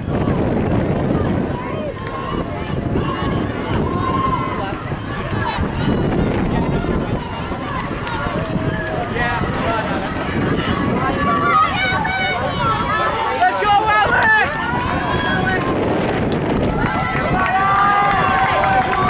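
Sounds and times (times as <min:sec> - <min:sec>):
spectators talking and calling out: 0:00.0 - 0:19.0.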